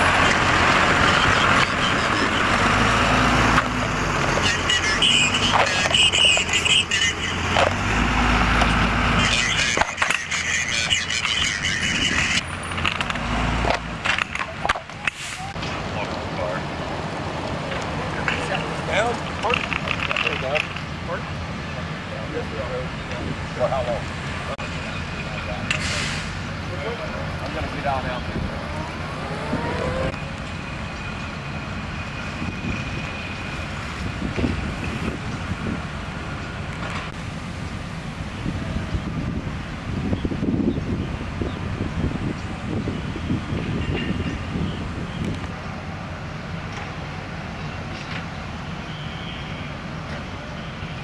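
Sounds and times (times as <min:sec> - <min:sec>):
fire engine rumbling: 0:00.0 - 0:51.0
high whine: 0:27.4 - 0:31.0.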